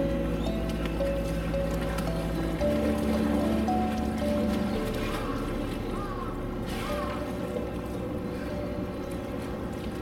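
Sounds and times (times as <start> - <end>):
water low rumble: 0.0 - 10.0.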